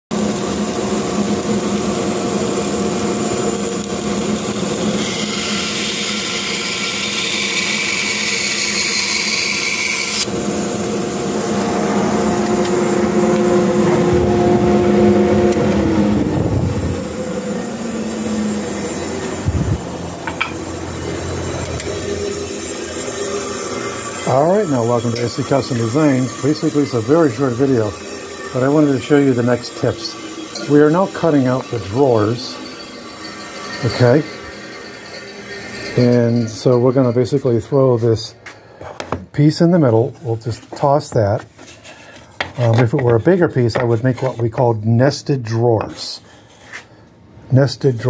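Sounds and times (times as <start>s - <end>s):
bandsaw cutting wood: 0.1s - 38.1s.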